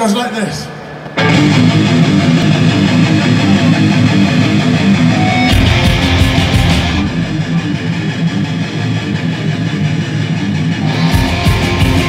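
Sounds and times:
distorted electric guitars and bass: 0:01.0 - 0:12.0
drums and cymbals crashing: 0:05.2 - 0:08.0, 0:10.8 - 0:12.0.

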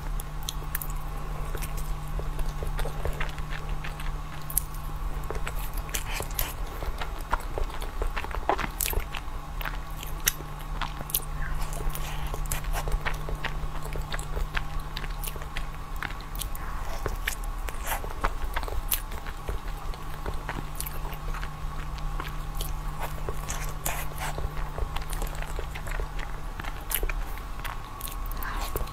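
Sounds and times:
wet chewing with mouth clicks: 0:00.0 - 0:28.9
biting into soft pastry: 0:00.1 - 0:28.9.

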